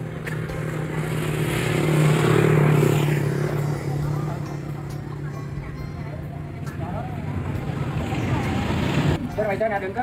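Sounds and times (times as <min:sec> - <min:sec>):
motor engine passing by: 0:00.0 - 0:09.2.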